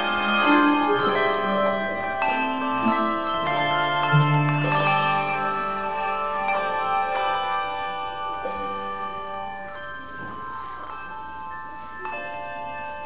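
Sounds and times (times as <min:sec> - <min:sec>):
handbell chords ringing: 0:00.0 - 0:13.0.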